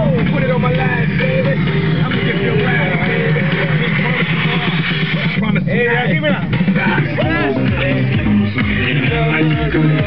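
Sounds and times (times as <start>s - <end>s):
people's voices: 0.0s - 10.0s.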